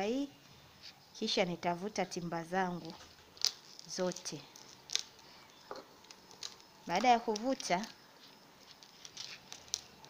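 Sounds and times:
beads clicking and rustling: 2.8 - 10.0.

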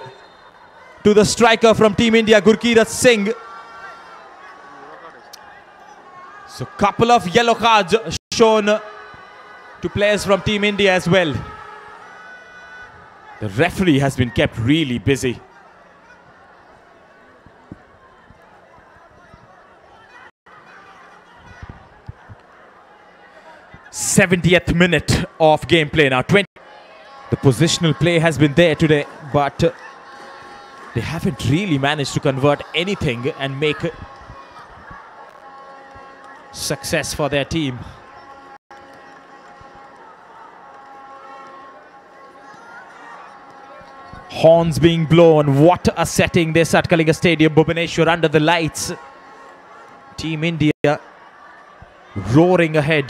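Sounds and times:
distant horns blown in stands: 0.0 - 19.7, 26.6 - 52.0
faint crowd noise: 0.0 - 53.0
faint stadium ambience: 0.0 - 53.0.

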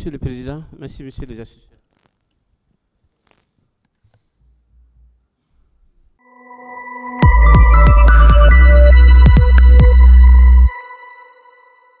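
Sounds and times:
electronic jingle with heavy bass: 6.2 - 12.0
high ringing tone: 6.2 - 12.0.

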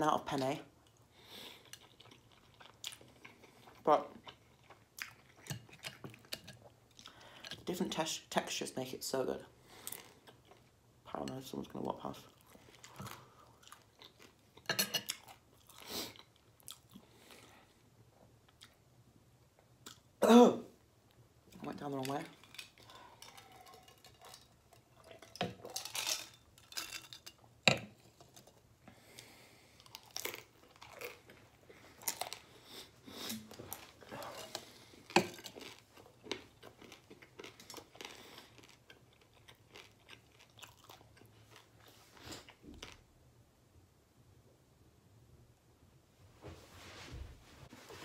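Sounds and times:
crunchy chewing: 29.8 - 43.0.

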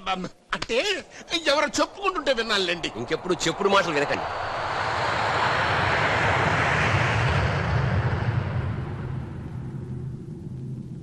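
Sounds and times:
steady low rumble: 0.0 - 11.0
airliner engine rush: 0.8 - 11.0.

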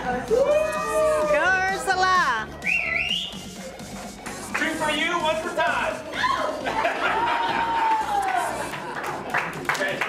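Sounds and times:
person whistling: 2.6 - 3.6.

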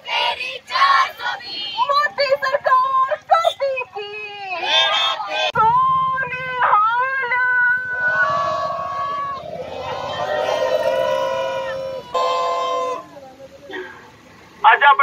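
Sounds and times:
protesters chanting: 0.0 - 2.1, 4.6 - 5.6, 6.5 - 13.2.

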